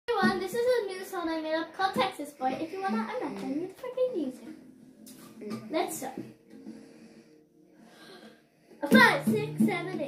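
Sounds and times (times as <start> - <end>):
child speaking: 0.1 - 4.6, 5.5 - 6.3, 8.8 - 10.0
faint breathing: 6.3 - 8.9.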